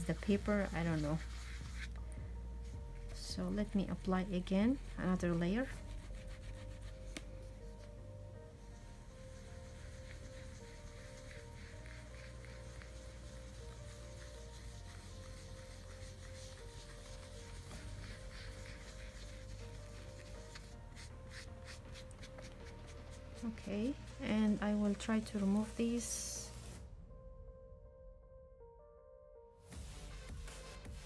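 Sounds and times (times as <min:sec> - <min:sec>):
foam tool swishing on paper: 0:00.0 - 0:07.9, 0:08.8 - 0:26.8, 0:29.8 - 0:31.0
quiet background music: 0:00.0 - 0:31.0.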